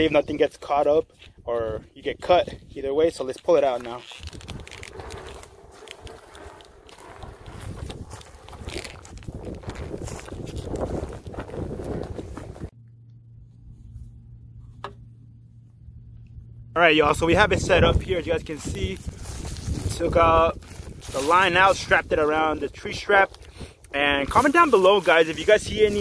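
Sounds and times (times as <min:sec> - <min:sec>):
steady low hum: 0:00.0 - 0:21.1
footsteps through dry grass: 0:02.0 - 0:12.7, 0:17.6 - 0:26.0.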